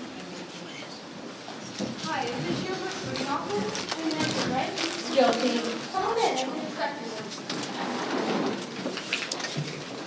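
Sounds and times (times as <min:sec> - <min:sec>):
clothing rustle: 0:02.9 - 0:06.2
chairs scraping on floor: 0:07.5 - 0:09.0.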